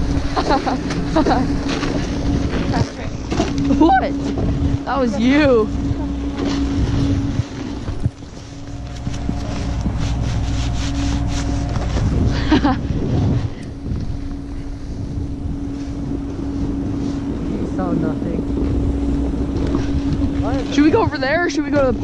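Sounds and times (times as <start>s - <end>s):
steady low hum: 0.0s - 22.0s
wind rushing over microphone: 0.0s - 22.0s
snowboard scraping on snow: 7.9s - 12.3s
person laughing: 12.3s - 13.1s.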